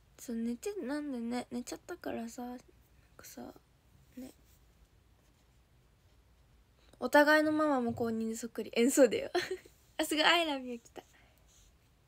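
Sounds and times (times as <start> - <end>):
soft breathy whispers: 10.7 - 12.0.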